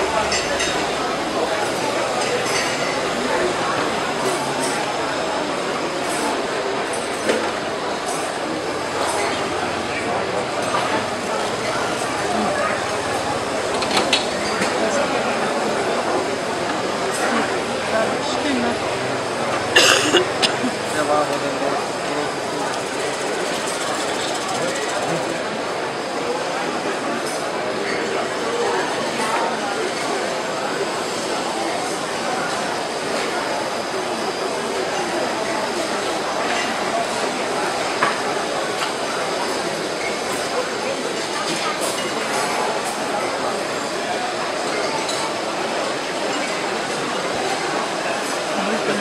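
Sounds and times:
people talking: 0.0 - 49.0.

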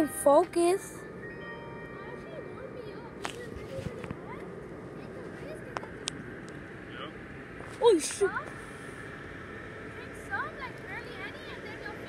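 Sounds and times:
crowd chatter: 0.0 - 8.8.

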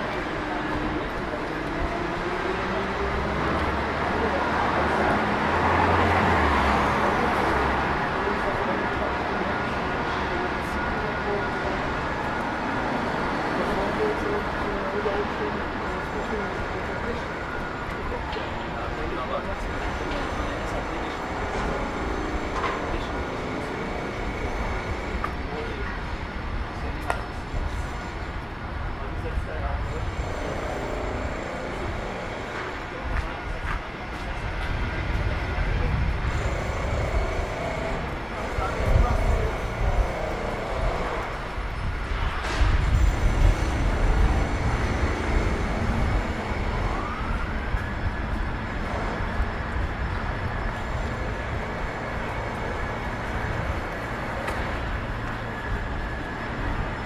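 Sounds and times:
street traffic rumble: 0.0 - 57.0.

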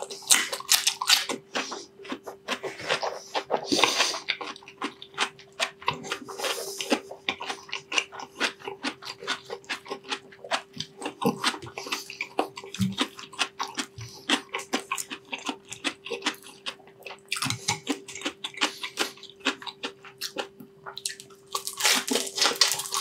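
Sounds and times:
crunchy chewing: 0.0 - 23.0
faint steady hum: 0.0 - 23.0.

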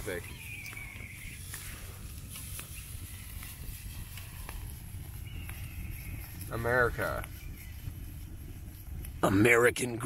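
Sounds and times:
sharp pops of fire: 0.0 - 9.6
low steady rumble: 0.0 - 10.0
wood fire crackling: 0.0 - 10.0.

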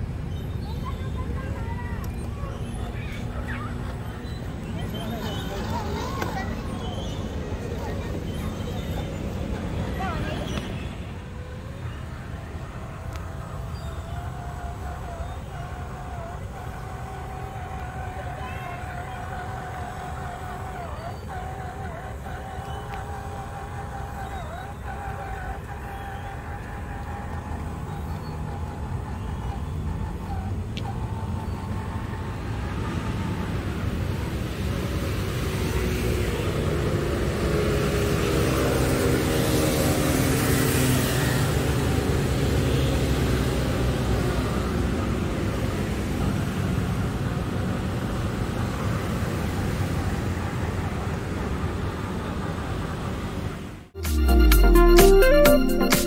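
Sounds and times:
rc truck motor whining: 0.0 - 36.6
vehicle passing by: 0.0 - 55.0.

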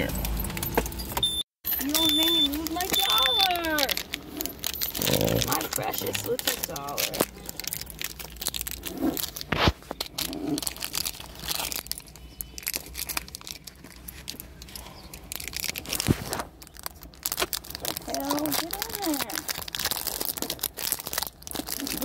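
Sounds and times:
objects crinkling and rustling: 0.1 - 22.0.

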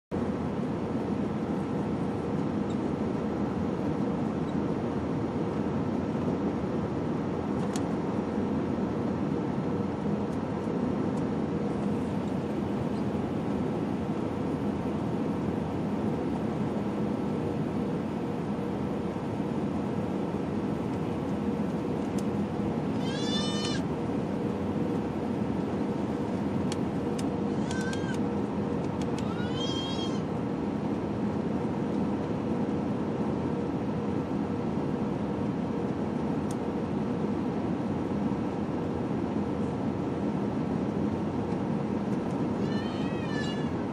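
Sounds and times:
jet airliner cabin roar: 0.1 - 43.9
high-pitched squealing cry: 22.9 - 23.8, 27.5 - 28.2, 29.2 - 30.3, 42.5 - 43.8.

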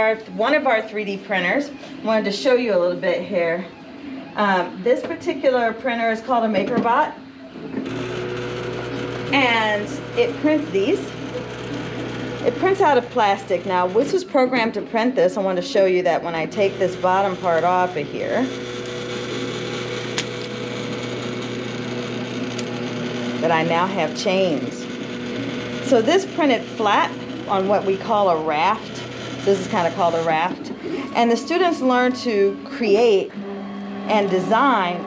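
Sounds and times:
printer motors and fan whirring: 0.0 - 34.9.

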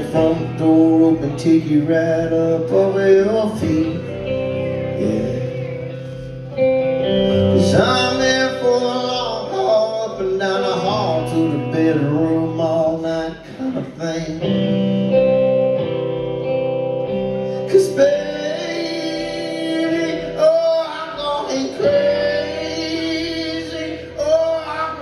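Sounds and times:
man singing: 0.0 - 6.0, 7.3 - 15.2, 17.5 - 25.0
guitar chords: 0.0 - 25.0.

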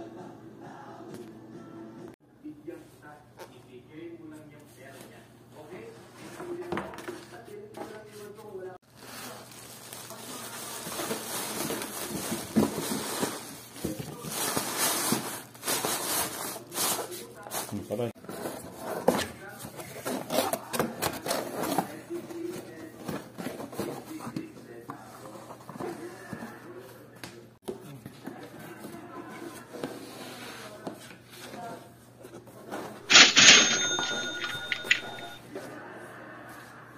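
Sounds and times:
plastic bag crinkling in box: 8.9 - 16.4
cash register bell ringing: 33.1 - 35.4
cash register clatter: 33.1 - 35.4.

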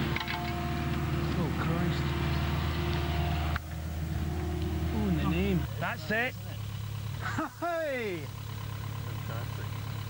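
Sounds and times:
excavator engine running: 0.0 - 10.0.

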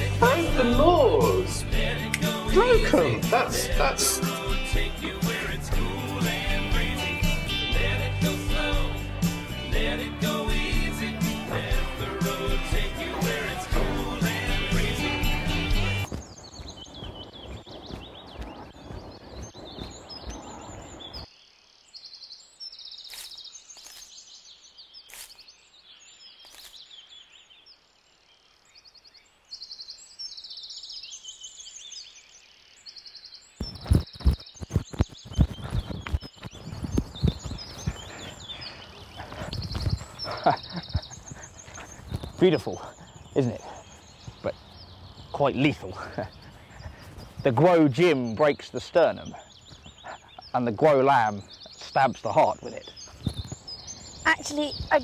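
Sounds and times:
music: 0.0 - 16.1
birds chirping: 0.0 - 55.0.

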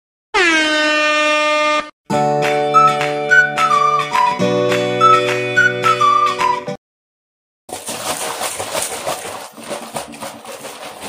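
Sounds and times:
air horn blast: 0.4 - 1.9.

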